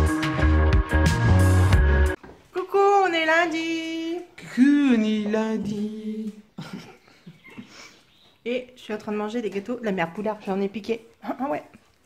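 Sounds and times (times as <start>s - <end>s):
woman's wordless sing-song voice: 2.5s - 6.8s.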